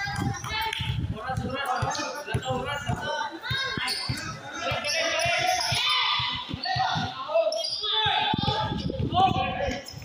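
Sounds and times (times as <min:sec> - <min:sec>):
basketball bouncing on concrete: 0:00.0 - 0:07.2, 0:08.0 - 0:09.4
players' raised voices: 0:01.4 - 0:10.0.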